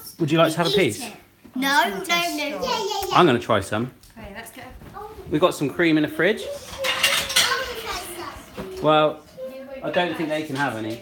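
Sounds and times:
crockery and cutlery clinking: 6.4s - 11.0s.

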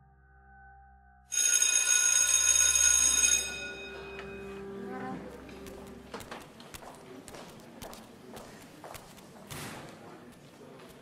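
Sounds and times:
school bell ringing: 1.3s - 5.0s.

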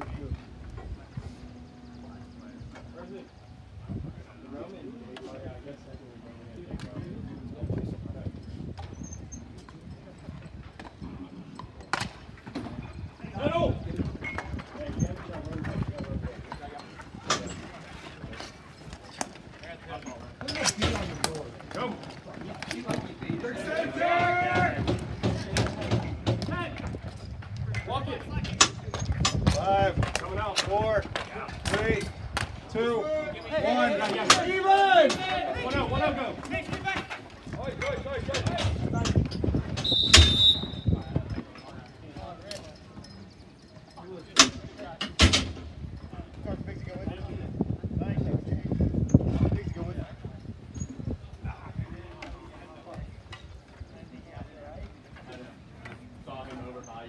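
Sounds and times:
hockey sticks clacking on ball: 20.3s - 32.6s
players shouting: 22.8s - 25.8s, 32.7s - 38.6s.

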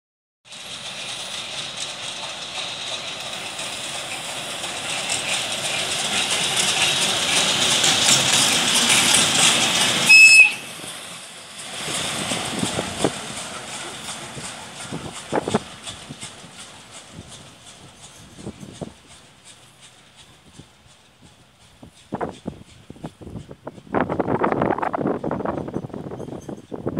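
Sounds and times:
diesel locomotive passing: 0.5s - 26.9s
rail noise with knocks: 0.5s - 26.9s.

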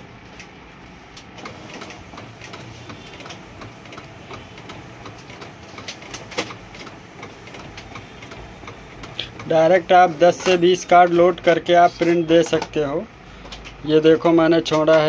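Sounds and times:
printer carriage whirring: 0.0s - 15.0s
small printer clicks: 1.3s - 12.8s.

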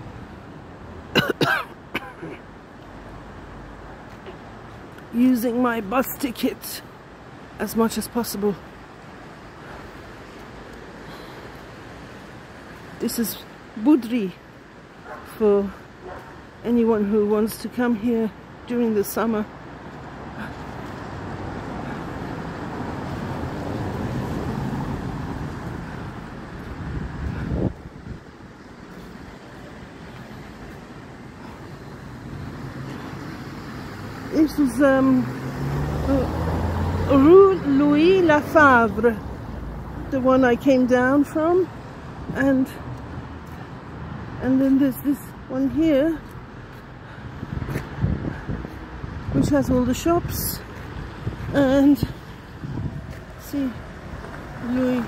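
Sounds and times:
low steady traffic background: 0.0s - 55.0s
person coughing: 1.1s - 2.4s
motor vehicle passing: 19.9s - 40.0s.

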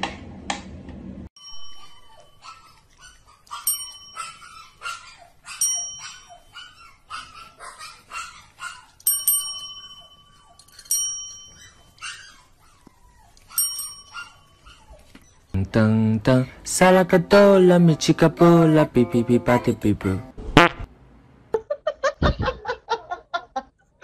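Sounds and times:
desk call bell ringing: 1.4s - 2.7s, 3.5s - 4.8s, 5.6s - 6.6s, 9.0s - 12.0s, 13.6s - 14.7s.

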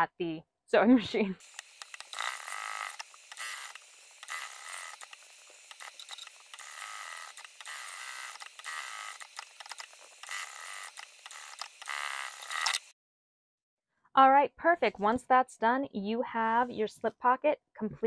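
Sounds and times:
sewing machine stitching: 1.4s - 12.9s.

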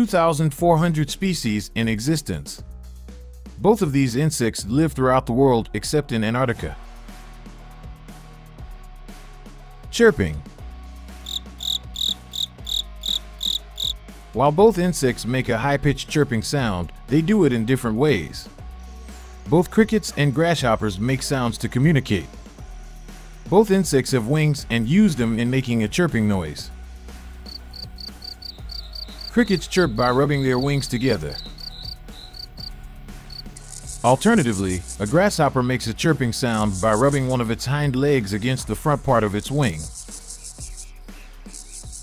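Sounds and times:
soft background music: 0.0s - 42.0s
cricket chirping: 11.2s - 14.0s, 27.4s - 32.7s, 33.3s - 35.1s, 39.9s - 40.9s, 41.5s - 42.0s.

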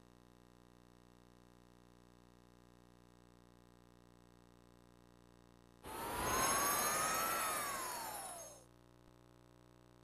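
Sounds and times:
whistling whoosh with sparkly shimmer: 5.9s - 8.7s.

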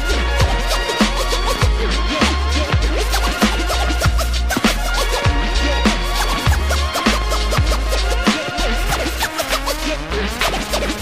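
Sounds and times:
hip hop beat: 0.0s - 11.0s
turntable scratching: 0.0s - 11.0s.

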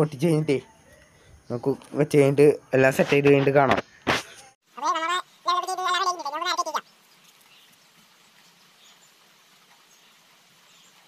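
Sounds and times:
high-pitched voice calling: 4.7s - 6.8s.

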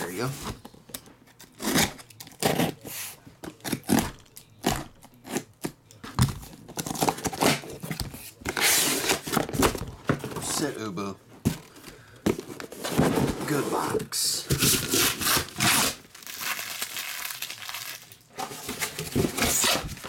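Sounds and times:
packing tape tearing: 1.4s - 2.9s, 14.5s - 20.0s
cardboard knocks and scrapes: 12.3s - 14.8s.

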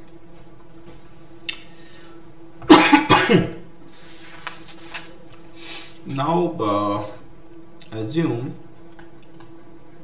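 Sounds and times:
man coughing loudly: 2.6s - 3.6s.

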